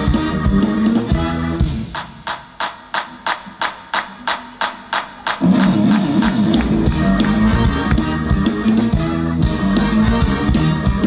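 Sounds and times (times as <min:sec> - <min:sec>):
sharp percussion hits: 0:01.8 - 0:06.9.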